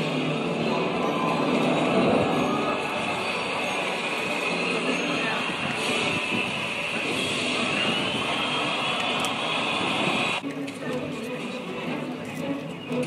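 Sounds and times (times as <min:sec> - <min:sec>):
indistinct voices: 0:00.0 - 0:13.0
outdoor background noise: 0:00.0 - 0:13.0.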